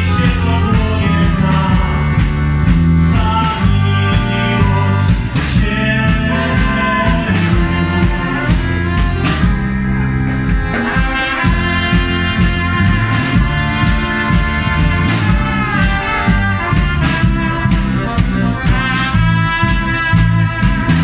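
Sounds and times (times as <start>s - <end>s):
accordion: 0.0s - 21.0s
bass line: 0.0s - 21.0s
brass horn: 0.0s - 21.0s
steady drum beat: 0.0s - 21.0s.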